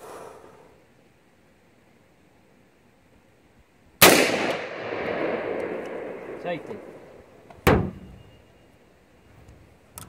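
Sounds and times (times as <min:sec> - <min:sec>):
truck door slamming: 0:07.6 - 0:08.2.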